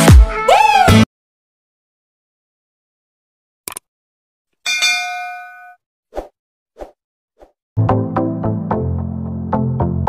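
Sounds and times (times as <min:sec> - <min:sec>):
music with a beat: 0:00.0 - 0:00.5
bright bell-like ding: 0:04.7 - 0:05.8.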